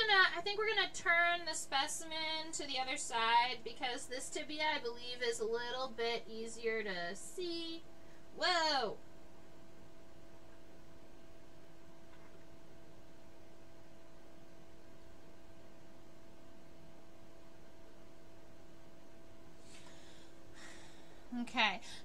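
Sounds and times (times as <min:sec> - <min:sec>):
two-note electrical hum: 0:00.0 - 0:22.0.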